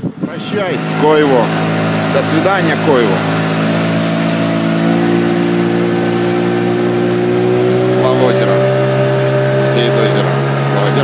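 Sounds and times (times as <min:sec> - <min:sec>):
outboard motor running: 0:00.0 - 0:11.0.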